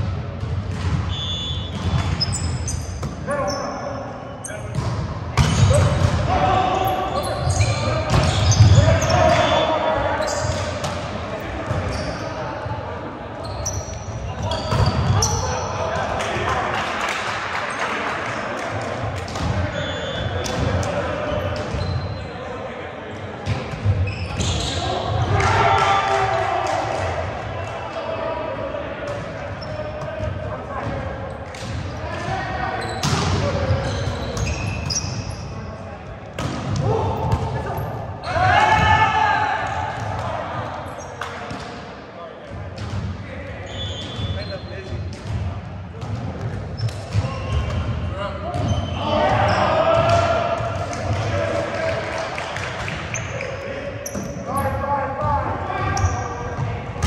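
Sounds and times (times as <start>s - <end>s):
players shouting: 5.4s - 13.5s, 24.4s - 31.2s, 36.7s - 41.0s, 47.2s - 57.0s.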